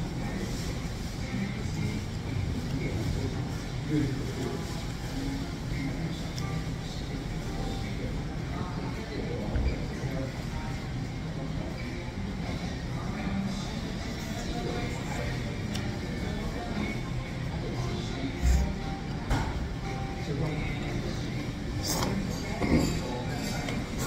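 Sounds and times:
music playing: 12.3 - 24.0.

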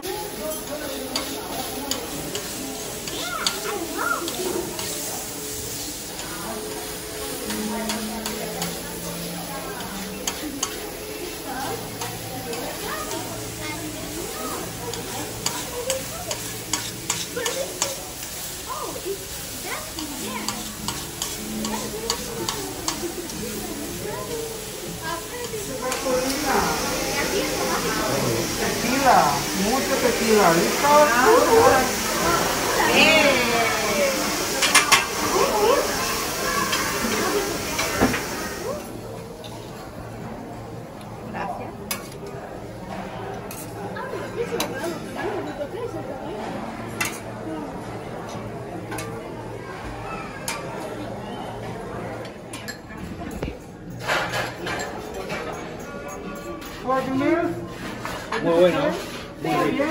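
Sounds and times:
food sizzling on a griddle: 0.0 - 39.9, 56.4 - 59.9
metal spatula scraping hot plate: 4.2 - 11.0, 14.9 - 18.5, 19.9 - 23.4, 57.7 - 59.8.

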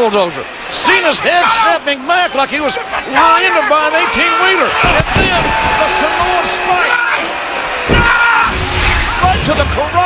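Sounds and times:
man yelling: 0.8 - 7.2.

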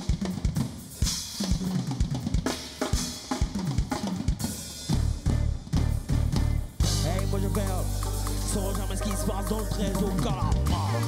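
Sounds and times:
electric bass line: 4.9 - 11.0.

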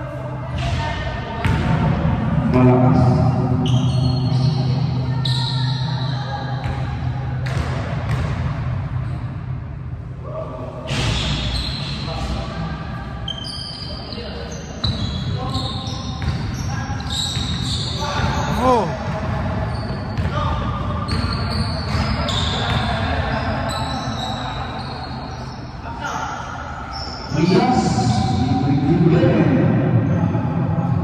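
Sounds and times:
basketball bouncing: 7.4 - 8.6
players' voices: 11.9 - 31.0
sneakers squeaking on hardwood: 14.8 - 20.4, 21.0 - 26.2.

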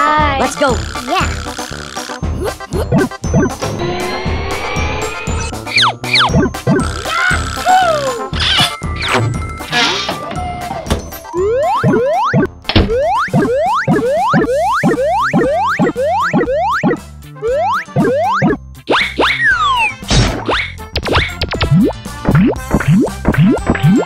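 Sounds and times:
children's background music: 0.0 - 24.0.

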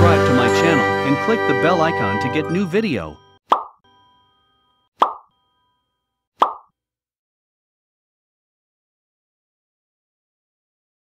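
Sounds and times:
cartoon pop sound effects: 3.5 - 3.8, 5.0 - 5.3, 6.4 - 6.7.

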